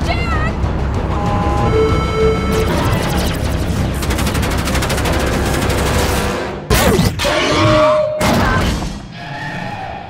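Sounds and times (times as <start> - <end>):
rapid automatic gunfire: 3.1 - 6.3.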